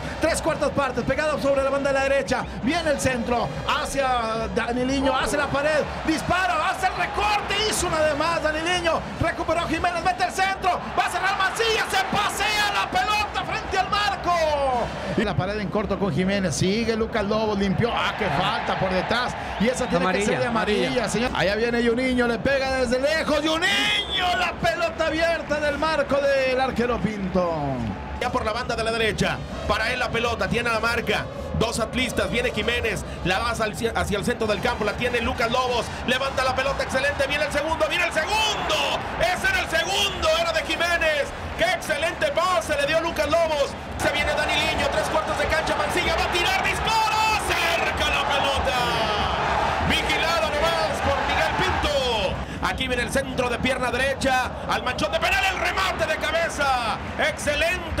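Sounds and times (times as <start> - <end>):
man commentating quickly: 0.0 - 58.0.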